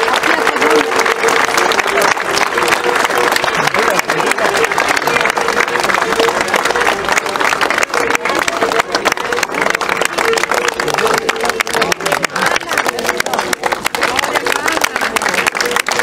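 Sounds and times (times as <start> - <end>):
babble of voices: 0.0 - 16.0
crowd clapping: 0.0 - 16.0.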